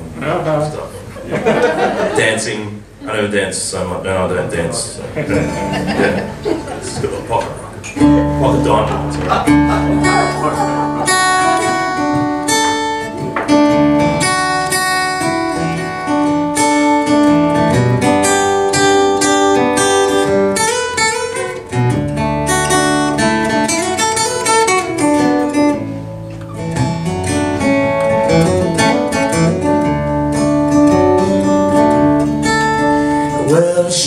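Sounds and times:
acoustic guitar strumming and picking: 0:05.2 - 0:34.0.

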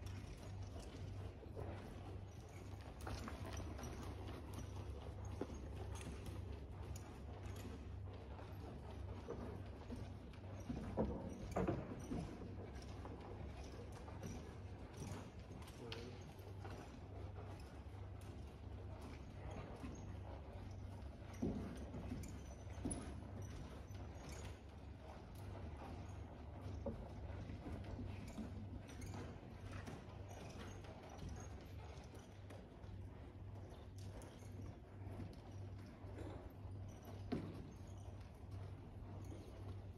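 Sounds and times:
hoofbeats on soft dirt: 0:00.0 - 0:39.9.

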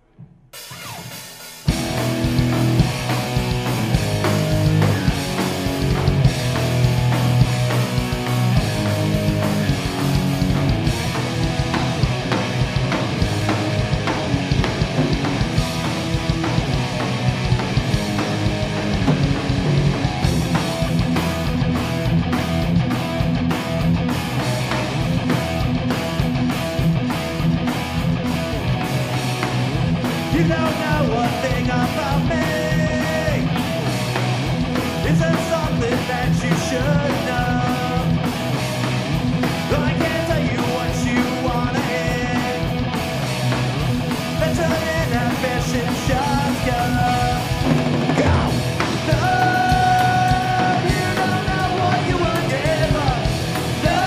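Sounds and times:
bass guitar: 0:00.0 - 0:54.0
drum kit: 0:00.0 - 0:54.0
electric guitars: 0:00.0 - 0:54.0.

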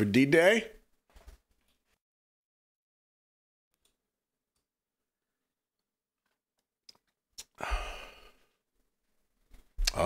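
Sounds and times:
man exhaling a sigh: 0:07.6 - 0:08.4.

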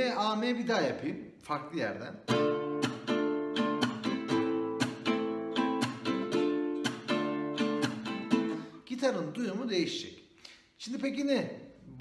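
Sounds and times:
classical guitar strumming: 0:02.2 - 0:08.8.

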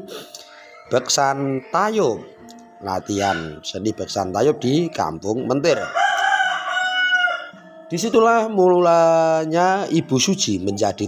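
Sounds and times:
rooster crowing: 0:00.5 - 0:08.6.

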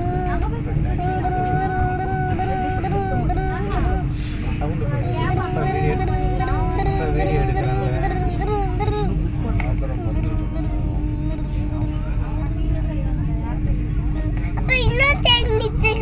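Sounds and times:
child's high voice: 0:00.0 - 0:04.1, 0:14.6 - 0:16.0
constant hum: 0:00.0 - 0:16.0
passengers talking: 0:00.0 - 0:16.0
train coach rumbling: 0:00.0 - 0:16.0.

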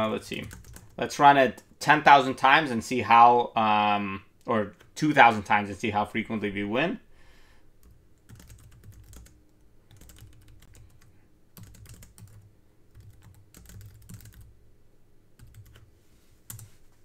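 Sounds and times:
computer keyboard typing: 0:00.2 - 0:01.0, 0:07.8 - 0:14.5, 0:15.4 - 0:15.8, 0:16.5 - 0:16.7.

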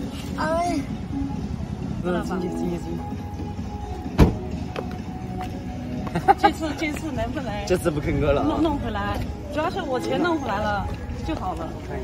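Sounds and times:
car door thump: 0:04.1 - 0:04.6.

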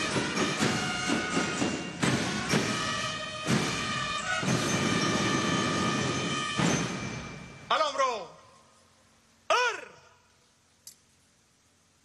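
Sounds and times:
shouted military drill command: 0:09.5 - 0:10.2.

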